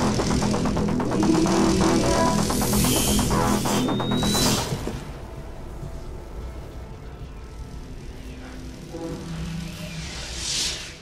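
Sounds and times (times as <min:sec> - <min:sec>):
low rumbling drone: 0:00.0 - 0:11.0
sustained tones: 0:05.9 - 0:11.0.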